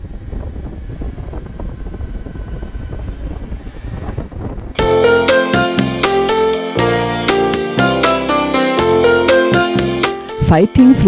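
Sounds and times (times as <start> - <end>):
wind rushing over microphone: 0.0 - 4.8.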